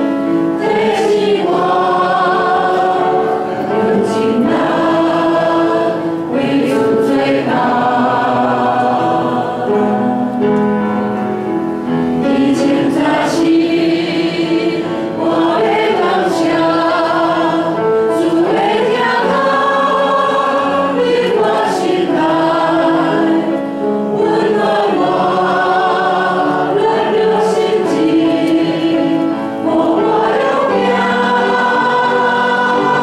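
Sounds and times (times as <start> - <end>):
worship team singing a hymn: 0.0 - 10.6, 11.8 - 33.0.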